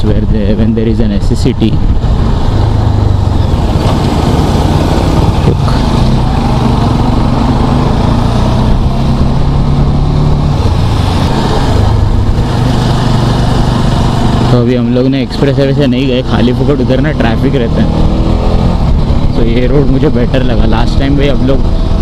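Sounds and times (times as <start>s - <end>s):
wind rushing over microphone: 0.0s - 15.4s, 17.7s - 22.0s
motorcycle engine running: 0.0s - 22.0s.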